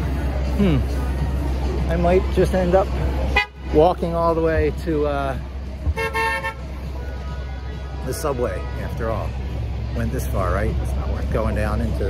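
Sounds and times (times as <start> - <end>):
city street traffic rumble: 0.0 - 12.0
car horn honk: 3.4 - 3.6, 5.9 - 6.6.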